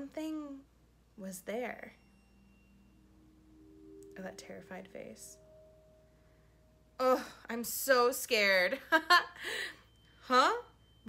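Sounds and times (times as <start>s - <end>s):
faint held music tones: 0.0s - 11.0s.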